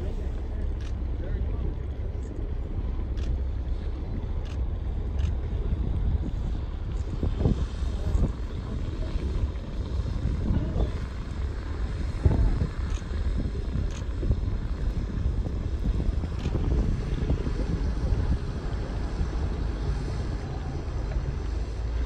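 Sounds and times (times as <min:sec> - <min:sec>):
boat engine rumbling: 0:00.0 - 0:22.0
wind buffeting microphone: 0:00.0 - 0:22.0.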